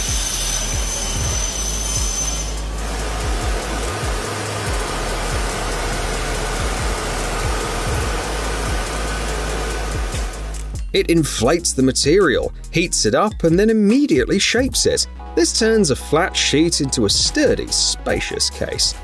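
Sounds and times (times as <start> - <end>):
machine air rush and hum: 0.0 - 10.8
thin high whine: 0.0 - 10.9.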